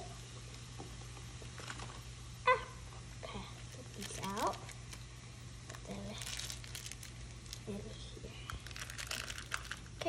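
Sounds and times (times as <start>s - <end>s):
wet handling noise: 3.7s - 7.7s, 8.5s - 10.0s.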